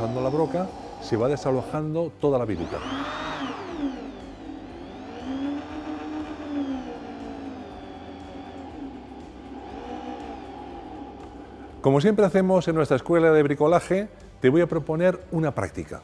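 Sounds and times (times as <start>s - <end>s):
electric drill boring into wood: 0.0s - 11.9s.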